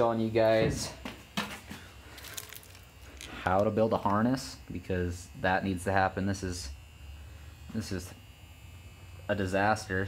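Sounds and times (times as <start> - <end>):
faint crackle: 2.1 - 4.2.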